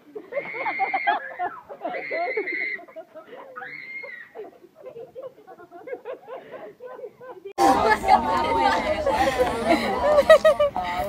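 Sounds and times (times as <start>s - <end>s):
overlapping chatter of people: 4.4s - 11.0s.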